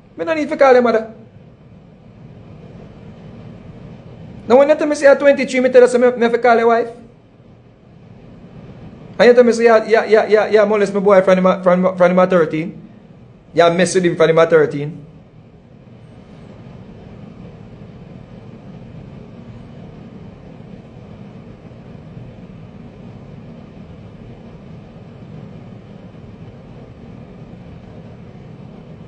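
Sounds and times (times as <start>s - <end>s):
low background rumble: 0.0s - 29.0s.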